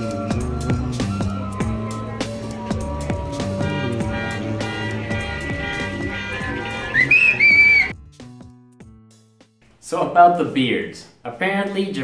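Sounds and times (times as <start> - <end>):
music with beat and plucked notes: 0.0 - 9.6
high whistle-like tone sliding up: 6.9 - 7.9.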